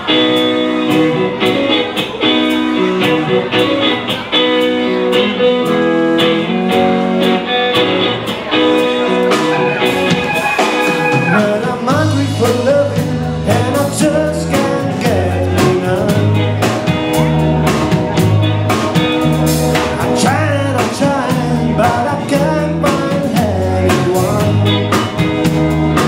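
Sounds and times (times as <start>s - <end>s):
drum kit: 0.0s - 26.0s
electric guitars: 0.0s - 26.0s
electric organ: 0.0s - 26.0s
repeating bass line: 7.8s - 14.5s
man singing: 10.8s - 17.3s, 19.8s - 25.3s.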